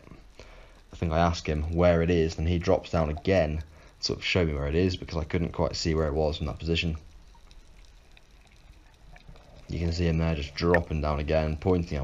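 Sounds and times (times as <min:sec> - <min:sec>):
faint ticks: 0:00.0 - 0:04.2, 0:04.8 - 0:12.0
underwater water rumble: 0:00.0 - 0:12.0.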